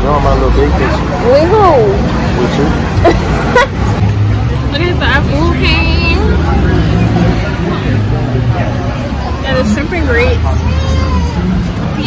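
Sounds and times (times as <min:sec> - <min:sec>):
street traffic rumble: 0:00.0 - 0:12.0
people talking: 0:04.6 - 0:12.0.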